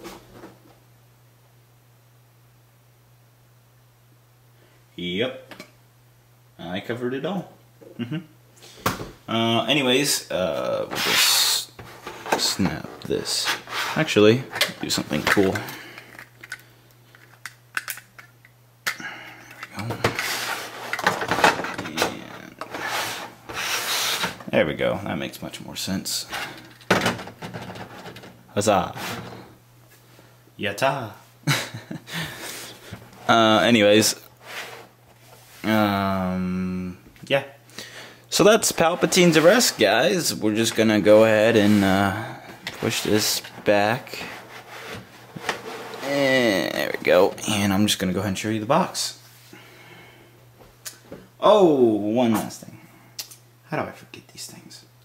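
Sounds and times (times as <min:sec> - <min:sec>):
plastic parts scraping on surface: 0:19.8 - 0:24.4, 0:42.6 - 0:46.2
plastic scraping on tabletop: 0:44.1 - 0:46.1.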